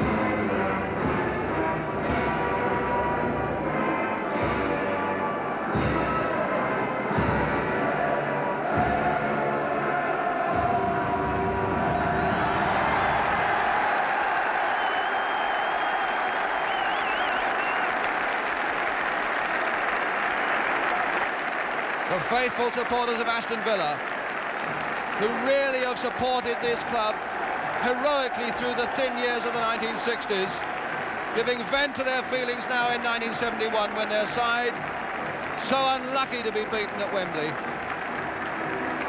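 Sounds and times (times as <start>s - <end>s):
orchestral music: 0.0s - 12.8s
stadium crowd cheering and applauding: 0.0s - 39.0s
shrill whistle: 14.7s - 18.0s.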